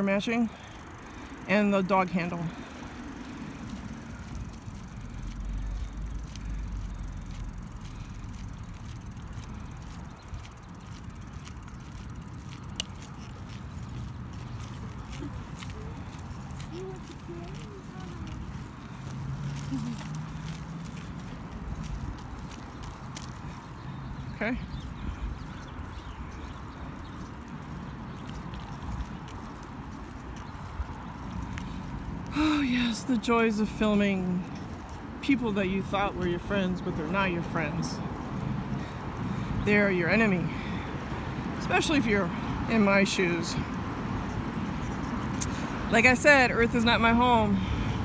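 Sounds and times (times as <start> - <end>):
road traffic rumble: 0.0 - 48.0
footsteps on concrete: 2.2 - 33.0.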